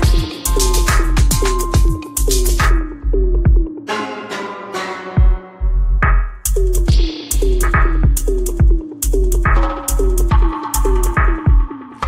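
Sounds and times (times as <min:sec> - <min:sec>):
deep sub-bass: 0:00.0 - 0:03.8, 0:05.6 - 0:11.5
drum-machine beat with cymbals: 0:00.0 - 0:03.8, 0:05.2 - 0:12.0.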